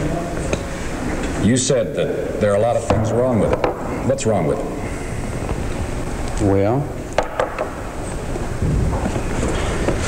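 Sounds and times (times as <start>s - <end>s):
recording hiss and rumble: 0.0s - 10.0s.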